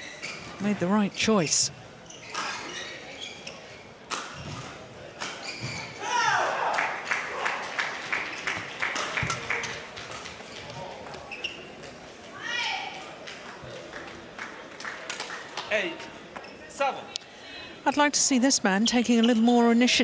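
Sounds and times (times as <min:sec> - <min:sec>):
shoes squeaking on court: 0:00.0 - 0:06.0, 0:10.1 - 0:12.0, 0:16.3 - 0:16.8, 0:17.9 - 0:20.0.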